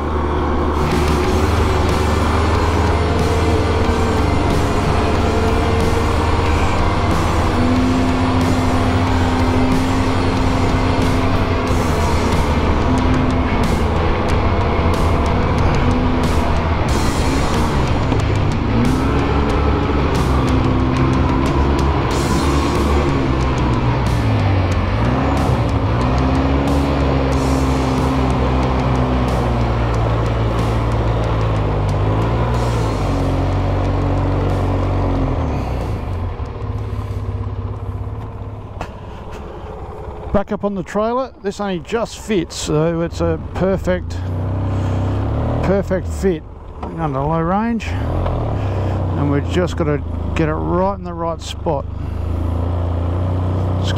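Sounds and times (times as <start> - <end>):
atv engine revving: 0.0 - 53.9.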